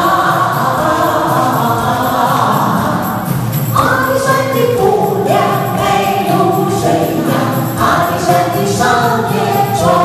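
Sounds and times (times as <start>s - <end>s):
backing track with steady beat: 0.0s - 10.0s
people singing together: 0.0s - 10.0s.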